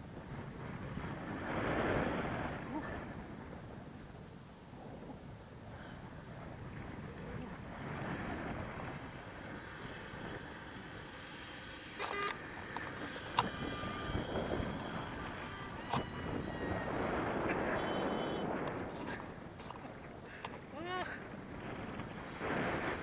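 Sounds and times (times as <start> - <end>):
wind rushing over microphone: 0.0 - 23.0
faint tones: 5.8 - 23.0
sharp clicks: 12.0 - 16.3.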